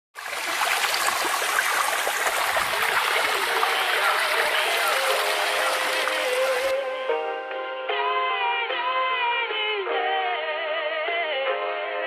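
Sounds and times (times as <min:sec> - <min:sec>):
running splashing water: 0:00.2 - 0:06.7.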